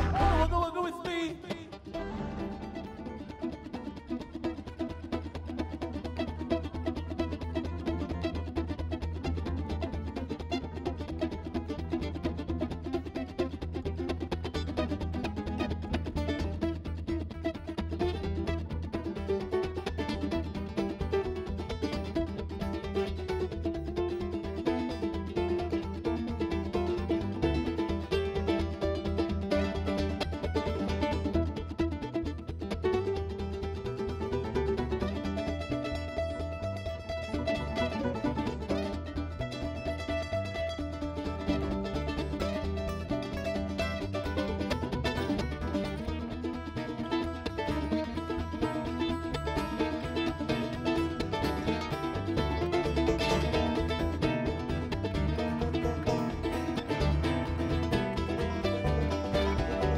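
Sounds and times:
steady beat: 0.0s - 3.5s
mandolin picking lead: 0.0s - 59.9s
upright bass: 0.0s - 59.9s.

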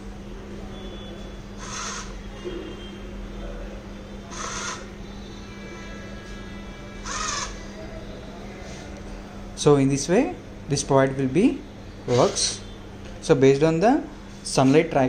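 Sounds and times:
steady low hum: 0.0s - 15.0s
bird harsh calls: 1.6s - 2.3s, 4.3s - 5.0s, 7.0s - 7.7s.

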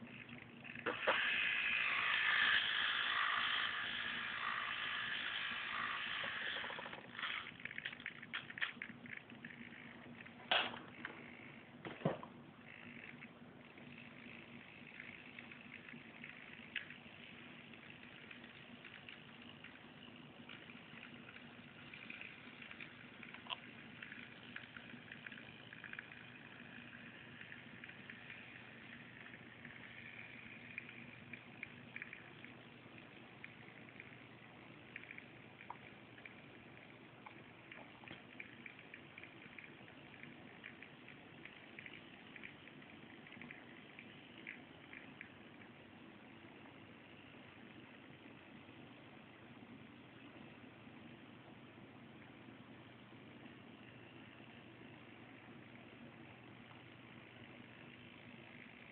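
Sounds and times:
small electric motor whirring: 0.0s - 11.7s, 12.6s - 36.9s.

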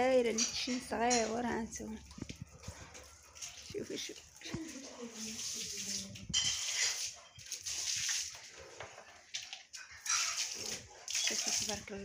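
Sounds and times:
water spraying onto plants: 3.4s - 8.4s, 10.0s - 12.0s.

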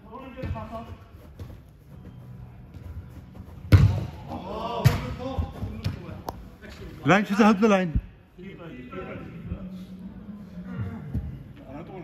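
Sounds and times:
football thud echoing: 3.6s - 4.2s.

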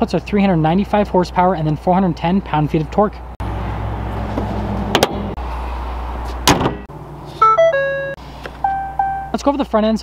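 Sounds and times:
truck hood slamming shut: 4.8s - 5.3s, 6.4s - 6.9s
electronic chime tones: 7.4s - 9.4s.

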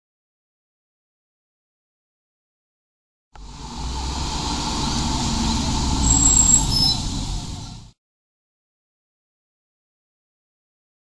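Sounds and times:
vehicle rumbling nearby: 3.4s - 8.0s
faint high squeals: 4.6s - 7.9s.

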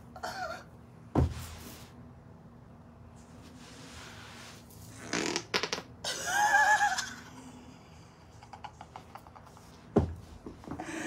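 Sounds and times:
body thumping on carpeted floor: 1.1s - 1.6s
vaginal flatulence sputtering: 4.9s - 5.9s.

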